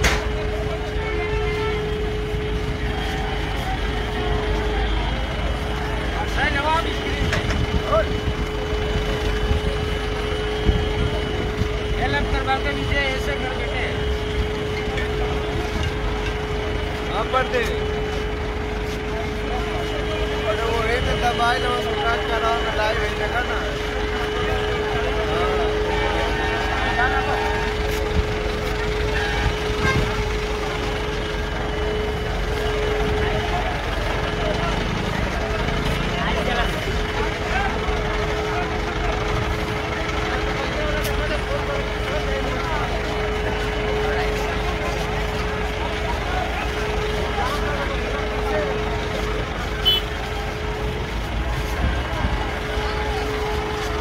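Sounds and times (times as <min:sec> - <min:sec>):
crowd chatter: 0:00.0 - 0:54.0
heavy vehicle engine running: 0:00.0 - 0:54.0.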